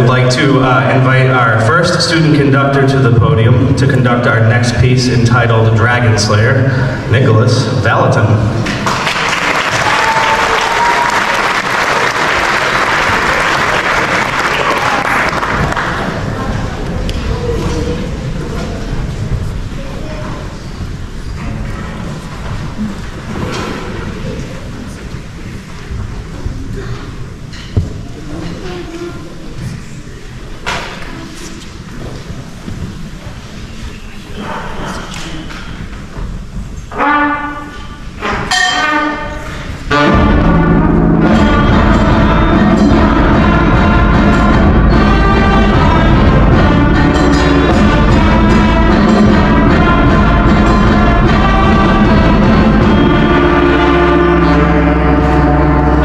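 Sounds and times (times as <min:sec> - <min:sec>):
concert band playing: 0:36.9 - 0:56.0.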